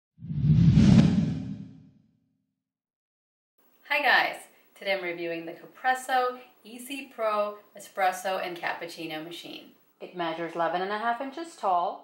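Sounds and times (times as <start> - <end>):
deep rumble: 0.2 - 1.8
whoosh: 0.2 - 2.0.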